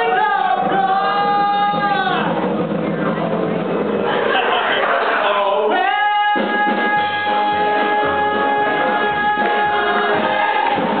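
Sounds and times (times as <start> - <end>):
live band playing: 0.0 - 11.0
chorus singing: 4.1 - 11.0.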